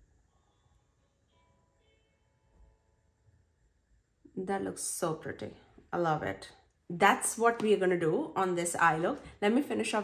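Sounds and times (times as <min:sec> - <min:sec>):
faint steady musical tones: 0:00.0 - 0:04.2.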